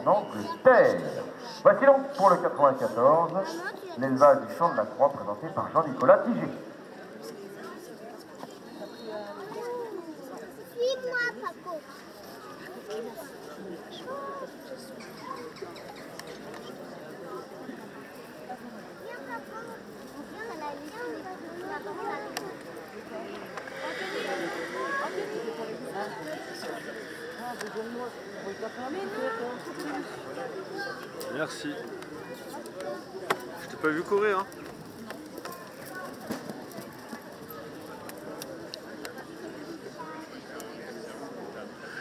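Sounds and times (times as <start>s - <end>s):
background chatter of people: 0.0s - 42.0s
crowd murmur: 0.0s - 42.0s.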